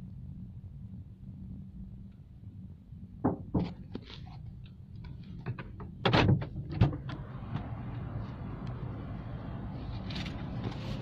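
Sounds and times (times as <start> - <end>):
low background hum and rumble: 0.0 - 11.0.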